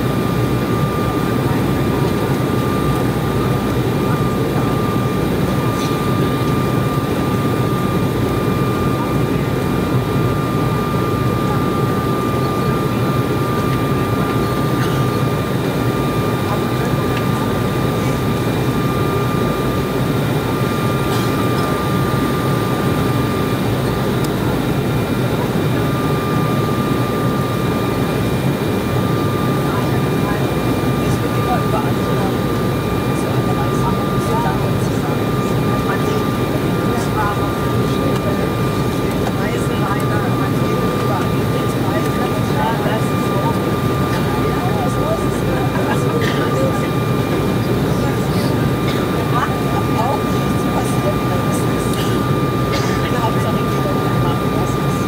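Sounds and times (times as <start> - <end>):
airflow and engine rush: 0.0 - 55.0
airliner cabin noise: 0.0 - 55.0
thin steady whine: 0.0 - 55.0.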